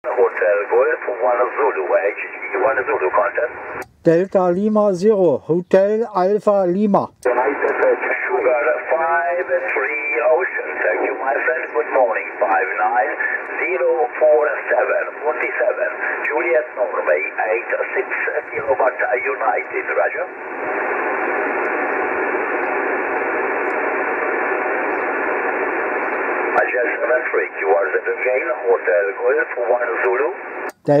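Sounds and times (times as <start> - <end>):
thin narrow-band radio speech: 0.0 - 4.5, 5.7 - 21.3, 26.5 - 31.0
radio hiss: 0.0 - 31.0.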